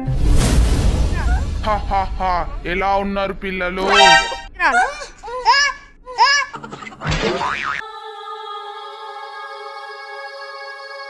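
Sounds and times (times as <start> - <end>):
comic boing sound effect: 3.8 - 4.5
held synthesizer chord: 3.8 - 4.6.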